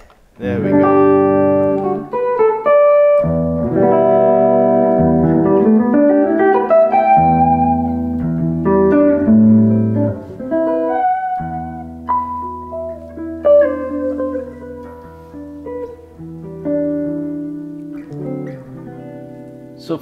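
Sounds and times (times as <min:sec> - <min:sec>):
electric guitar chords and notes: 0:00.4 - 0:20.0.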